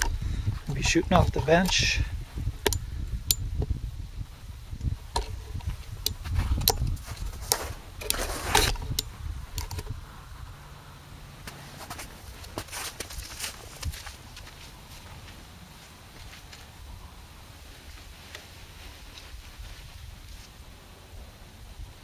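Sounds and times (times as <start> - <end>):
wind rumble on microphone: 0.0 - 10.8
camera handling clicks and knocks: 7.5 - 9.9.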